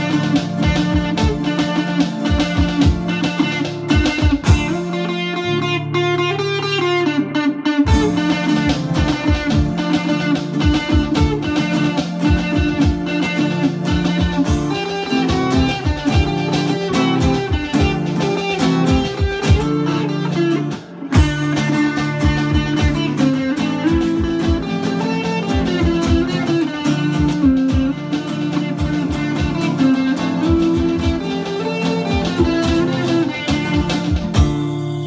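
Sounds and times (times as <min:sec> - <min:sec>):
drum-pad beats: 0:00.0 - 0:05.3, 0:07.9 - 0:35.0
electric guitar lead melody: 0:00.0 - 0:35.0
keyboard: 0:00.0 - 0:35.0
strummed rhythm guitar: 0:00.0 - 0:35.0.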